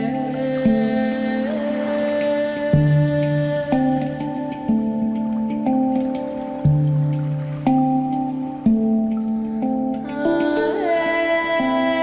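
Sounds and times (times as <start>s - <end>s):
handpan ringing notes: 0.0s - 12.0s.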